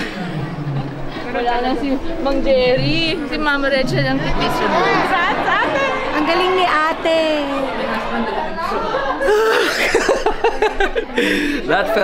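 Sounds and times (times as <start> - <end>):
chatter of people in a hall: 0.0 - 12.0.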